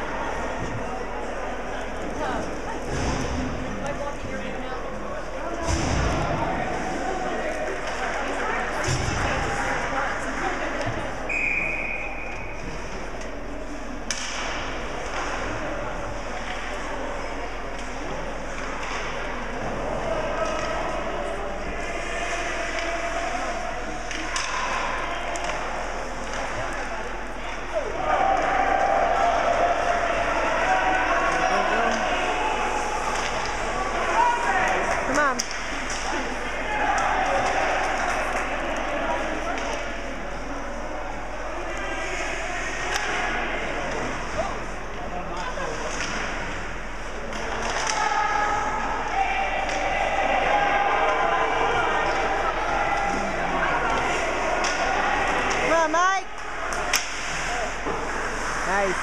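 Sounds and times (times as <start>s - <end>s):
shouting and chatter: 0.0s - 59.0s.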